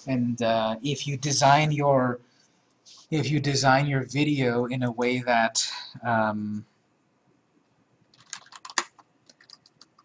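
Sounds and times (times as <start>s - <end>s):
computer keyboard typing: 8.1s - 10.0s.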